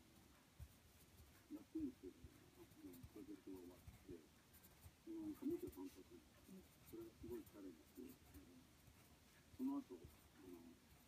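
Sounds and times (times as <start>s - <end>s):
pencil scratching on paper: 0.0s - 11.0s
muffled talk: 1.4s - 11.0s.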